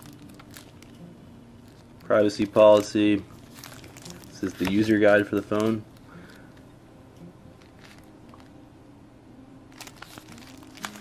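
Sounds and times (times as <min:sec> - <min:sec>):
paper rustling and crinkling: 0:00.0 - 0:01.0, 0:01.6 - 0:05.8, 0:07.6 - 0:08.5, 0:09.8 - 0:11.0.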